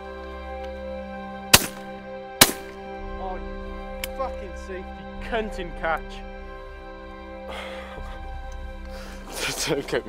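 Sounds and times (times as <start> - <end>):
shotgun shots: 1.5 - 2.7.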